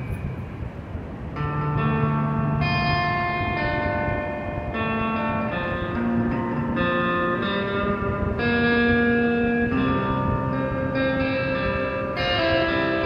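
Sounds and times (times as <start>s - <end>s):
electric guitar ringing chords: 0.0s - 13.0s.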